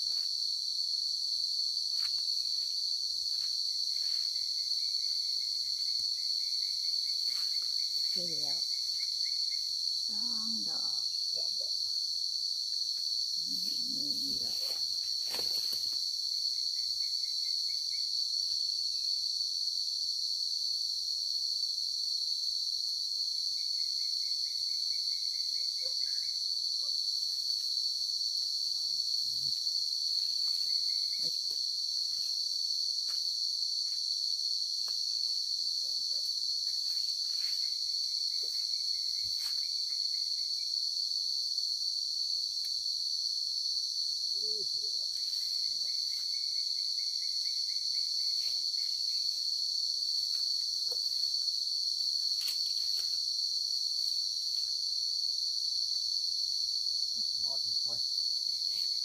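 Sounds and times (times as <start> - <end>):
high-pitched insect chorus: 0.0 - 59.0
footsteps rustling through undergrowth: 14.6 - 16.1.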